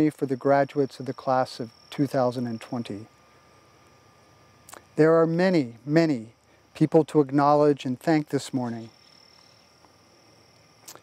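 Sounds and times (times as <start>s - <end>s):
high-pitched insect drone: 0.0s - 11.0s.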